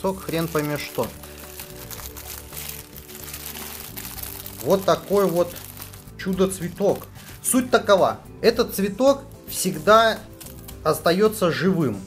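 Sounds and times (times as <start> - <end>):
plastic bag crinkling: 0.0 - 7.2
background music: 0.0 - 12.0.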